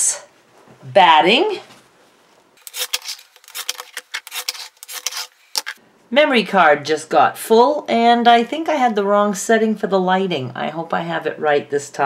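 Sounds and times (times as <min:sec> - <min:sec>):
short cutting strokes: 0:02.6 - 0:05.8.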